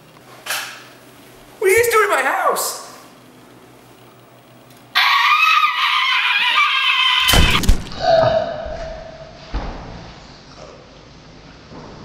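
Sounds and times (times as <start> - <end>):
person screaming: 5.0 - 8.6.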